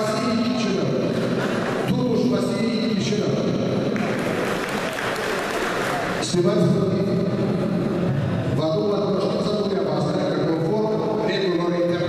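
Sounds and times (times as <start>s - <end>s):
audience applauding: 4.0s - 6.2s.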